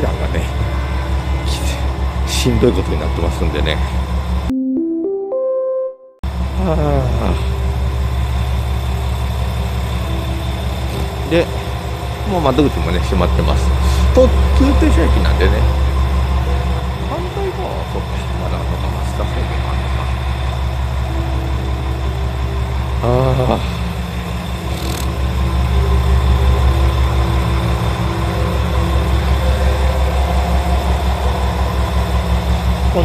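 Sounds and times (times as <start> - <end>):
diesel engine idling: 0.0 - 4.5, 6.2 - 33.0.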